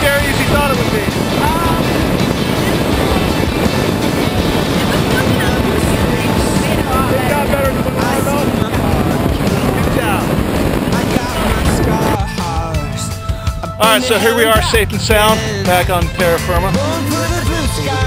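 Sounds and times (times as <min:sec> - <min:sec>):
wind rushing over microphone: 0:00.0 - 0:18.0.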